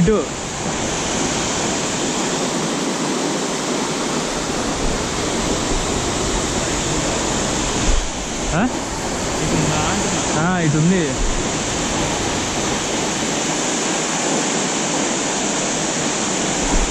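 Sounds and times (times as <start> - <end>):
waterfall rushing: 0.0 - 16.9.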